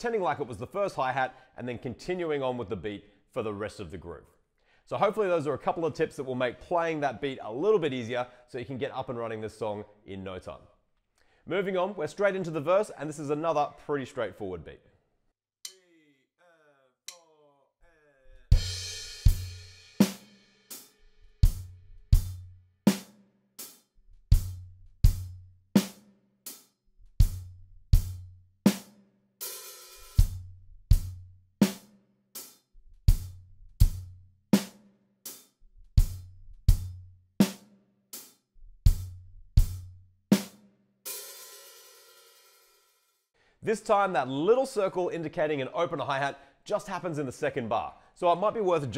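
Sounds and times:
drum kit rock beat: 0:18.4 - 0:42.7.

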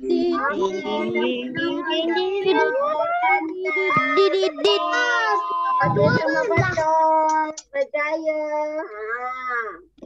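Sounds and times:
children singing over video call: 0:00.0 - 0:07.4.

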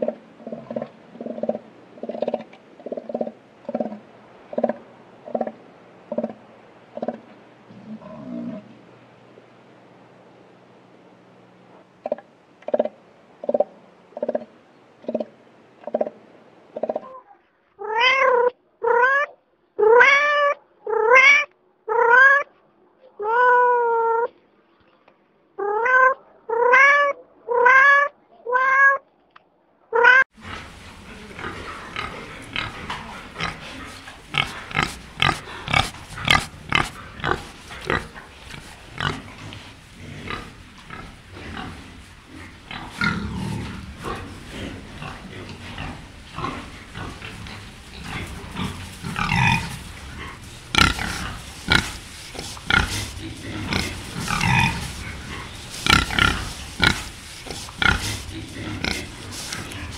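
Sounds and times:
cat meowing: 0:17.8 - 0:22.4, 0:25.6 - 0:29.0
pig snuffling and grunting: 0:30.4 - 0:59.9.

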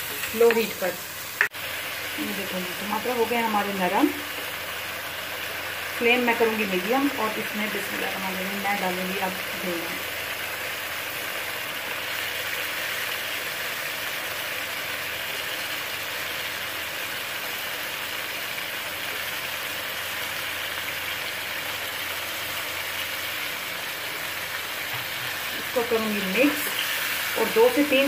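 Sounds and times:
masala sizzling in oil: 0:00.0 - 0:28.0.

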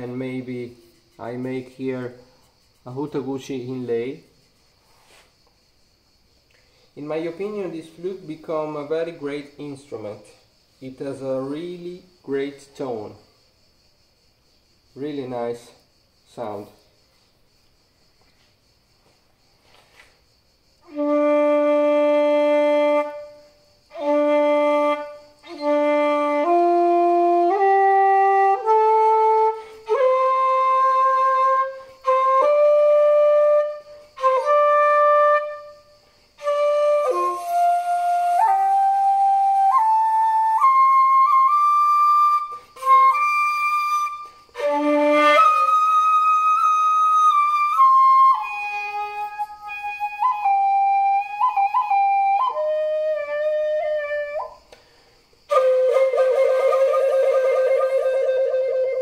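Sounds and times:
bamboo flute playing solo: 0:20.8 - 0:54.6, 0:55.5 - 0:59.0.

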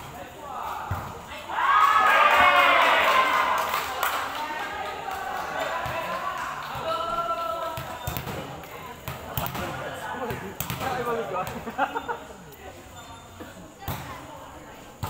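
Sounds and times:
players calling out: 0:00.3 - 0:13.0.

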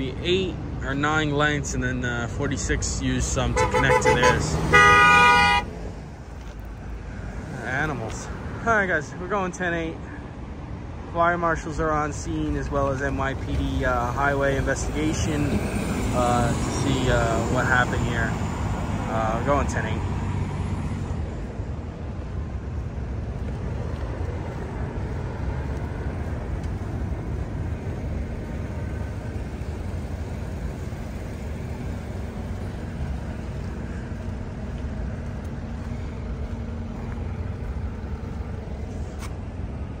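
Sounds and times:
road traffic rumble: 0:00.0 - 0:40.0
vehicle engines idling: 0:00.0 - 0:40.0.

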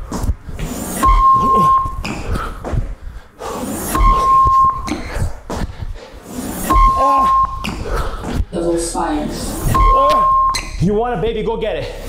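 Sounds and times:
interval timer beeps: 0:01.0 - 0:02.5, 0:03.9 - 0:05.2, 0:06.6 - 0:07.8, 0:09.6 - 0:10.8.

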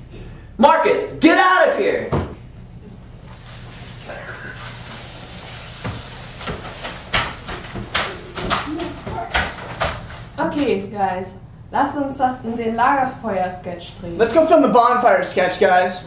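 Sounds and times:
footsteps: 0:03.2 - 0:10.4.

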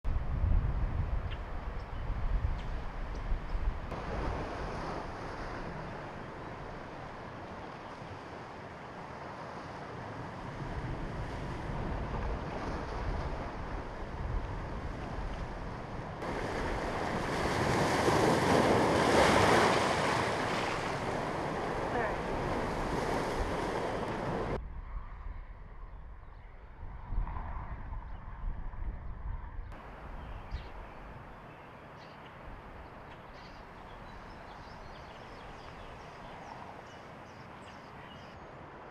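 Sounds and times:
wind on microphone: 0:00.0 - 0:31.5
lake waves breaking on rocks: 0:03.9 - 0:24.6.

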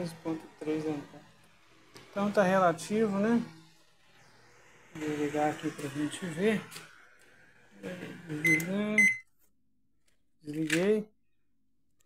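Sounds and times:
man talking: 0:00.0 - 0:01.2, 0:05.0 - 0:06.7
microwave keypad beeps: 0:08.4 - 0:09.2.

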